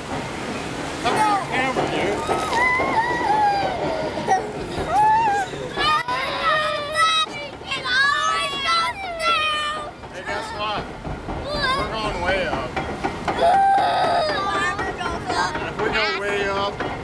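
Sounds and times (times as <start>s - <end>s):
children chattering and laughing: 1.0s - 12.2s, 13.4s - 16.6s.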